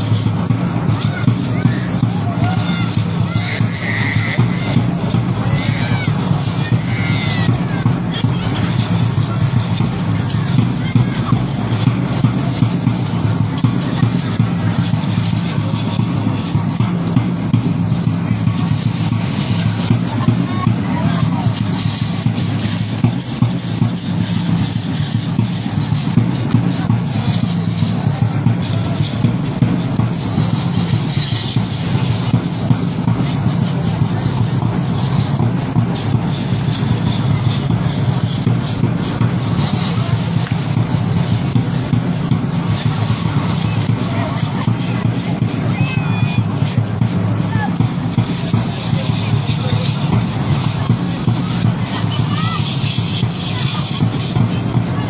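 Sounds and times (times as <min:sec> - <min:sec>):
large drum beating: 0:00.0 - 0:55.0
voices: 0:00.0 - 0:55.0.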